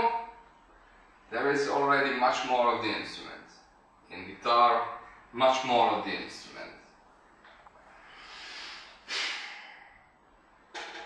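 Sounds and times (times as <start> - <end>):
soft airy breath: 7.8 - 10.3.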